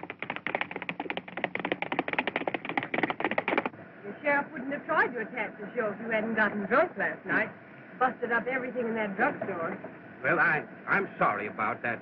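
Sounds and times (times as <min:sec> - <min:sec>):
horse hooves galloping: 0:00.0 - 0:03.7.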